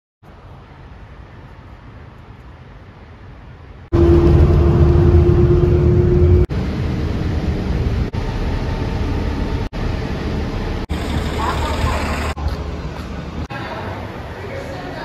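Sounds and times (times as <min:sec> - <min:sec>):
bus engine and road noise: 0:00.2 - 0:15.0
bus passing close: 0:03.8 - 0:15.0.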